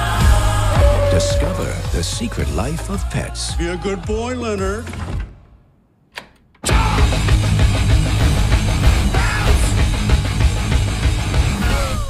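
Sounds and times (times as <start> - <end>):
heavy metal music: 0.0 - 3.7, 6.7 - 12.0.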